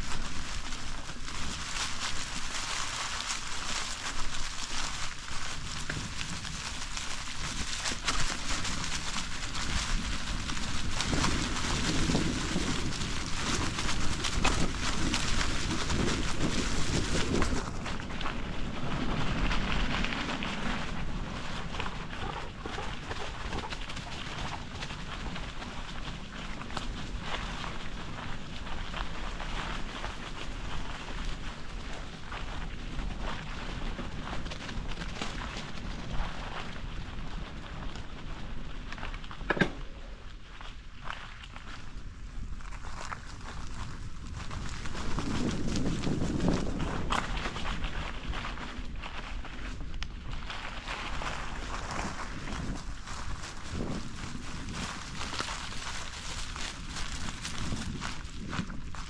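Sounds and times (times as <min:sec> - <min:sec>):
bicycle tyres rolling over leaves: 0:00.0 - 0:59.0.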